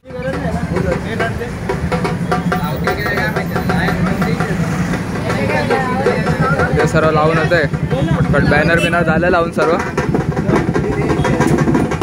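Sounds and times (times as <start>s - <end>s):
auto-rickshaw engine idling: 0.0s - 12.0s
people talking: 0.0s - 12.0s.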